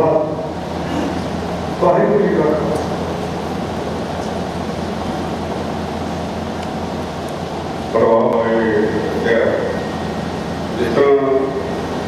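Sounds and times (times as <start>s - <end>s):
man speaking over public address: 0.0s - 0.5s, 1.8s - 3.0s, 7.9s - 9.9s, 10.7s - 11.7s
steady hum: 0.0s - 12.0s.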